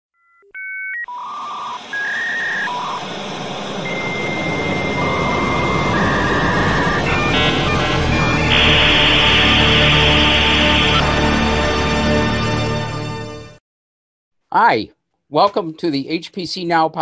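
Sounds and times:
electronic beeps: 0:00.3 - 0:11.5
theme music: 0:01.6 - 0:13.6.

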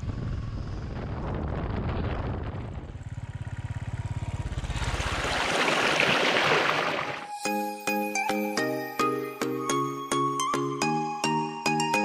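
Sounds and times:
motorcycle passing by: 0:00.0 - 0:07.3
music with bell-like notes: 0:07.3 - 0:12.0.

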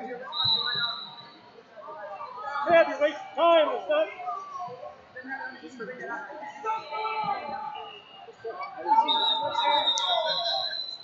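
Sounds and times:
people shouting and talking: 0:00.0 - 0:11.0
referee's whistle: 0:00.3 - 0:01.4, 0:06.8 - 0:11.0.

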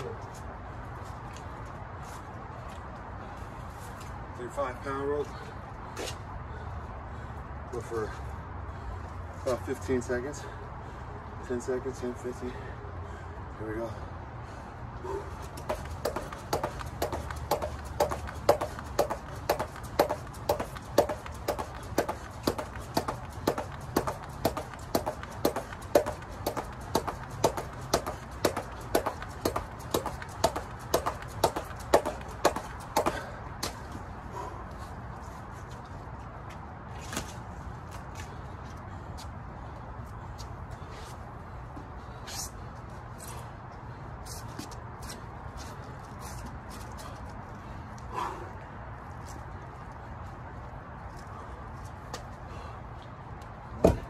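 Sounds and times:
jump rope slapping rubber mat: 0:15.1 - 0:34.0
jumper landing: 0:15.5 - 0:33.8.

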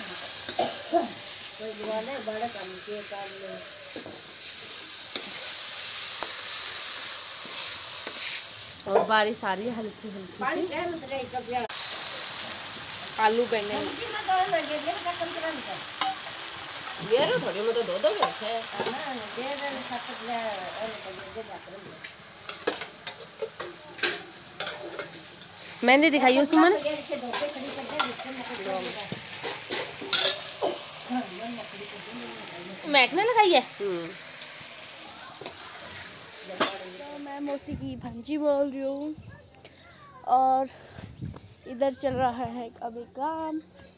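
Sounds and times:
vegetables sizzling in a pan: 0:00.0 - 0:39.0
woman speaking: 0:13.2 - 0:15.8, 0:17.0 - 0:22.0, 0:25.8 - 0:29.2, 0:31.1 - 0:34.2.

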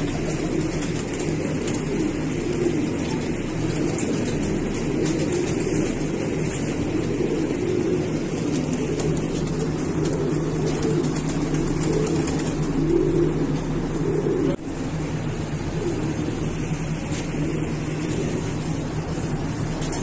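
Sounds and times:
low mechanical hum: 0:00.0 - 0:20.0
pigeons cooing: 0:00.0 - 0:20.0.

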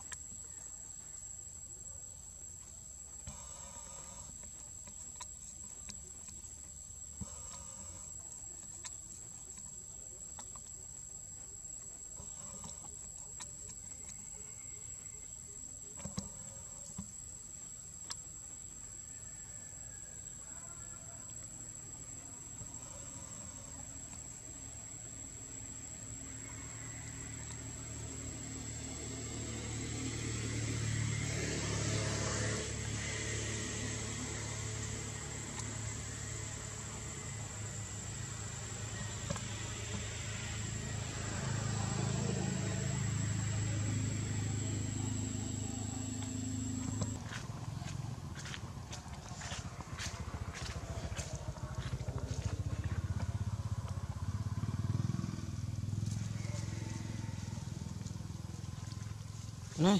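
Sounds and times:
passing motor vehicle rumble: 0:21.4 - 0:59.9.

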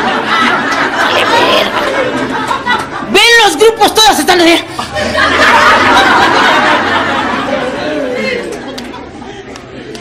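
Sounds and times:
audience chatter: 0:00.0 - 0:03.2, 0:04.5 - 0:10.0.

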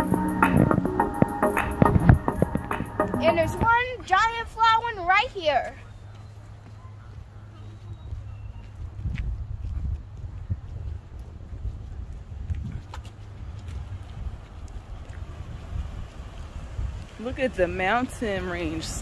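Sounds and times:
wind buffeting microphone: 0:00.0 - 0:05.5, 0:07.9 - 0:19.0.

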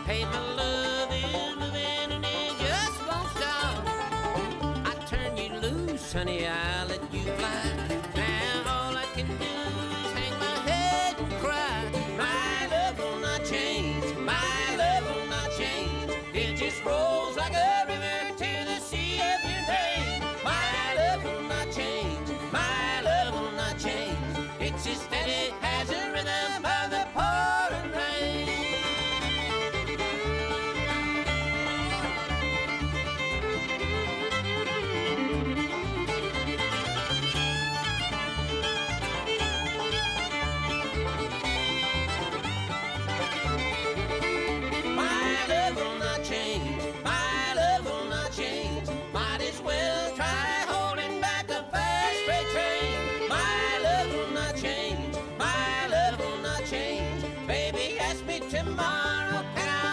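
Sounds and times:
bluegrass band playing: 0:00.0 - 0:59.9
fiddle playing: 0:00.0 - 0:59.9
person singing lead: 0:45.0 - 0:59.9.

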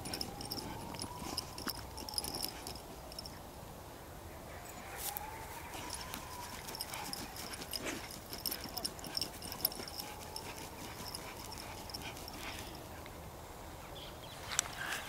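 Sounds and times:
dog digging in soil: 0:00.0 - 0:03.4, 0:04.9 - 0:13.0.

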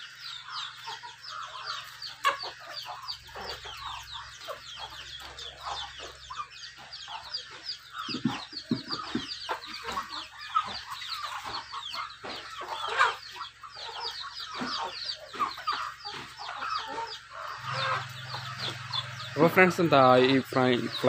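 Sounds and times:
chickens clucking and cheeping: 0:00.0 - 0:21.0.

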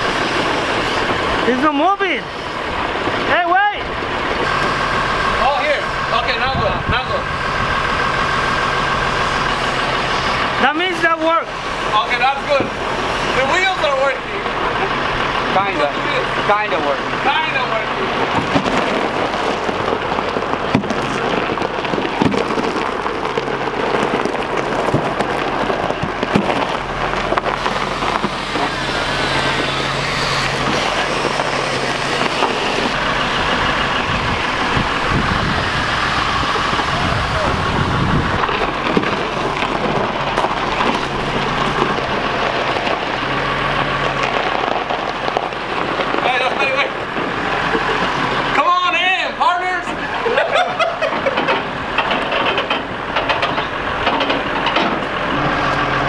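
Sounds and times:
continuous rushing noise: 0:00.0 - 0:56.0
forklift engine droning: 0:00.0 - 0:56.0
indistinct voices: 0:01.2 - 0:56.0.

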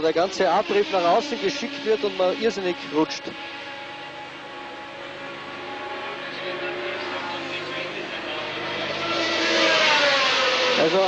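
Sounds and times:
racing car engines at high revs: 0:00.0 - 0:11.0.

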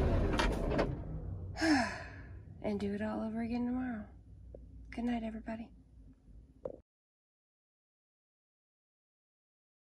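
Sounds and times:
person sighing: 0:01.6 - 0:02.4.

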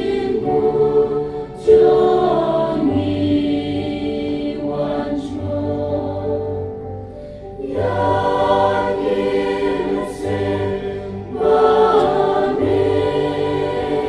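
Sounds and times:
church choir singing a hymn: 0:00.0 - 0:14.0.

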